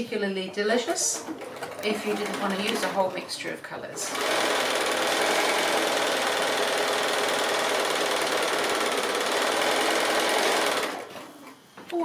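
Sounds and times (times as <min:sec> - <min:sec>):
sewing machine running: 0:01.2 - 0:03.1, 0:04.0 - 0:11.2.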